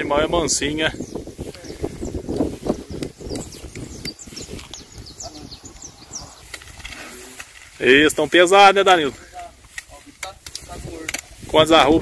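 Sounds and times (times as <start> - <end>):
small birds chirping: 0.0 - 12.0
footsteps on grass: 0.7 - 12.0.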